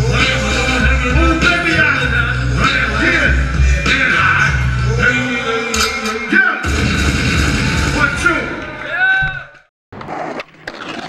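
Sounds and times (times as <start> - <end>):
skateboard clacks: 9.9 - 11.0
skateboard wheels rolling: 9.9 - 11.0.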